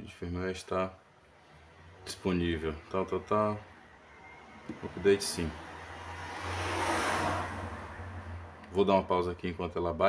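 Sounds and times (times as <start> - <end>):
vehicle passing by: 1.2 - 9.5.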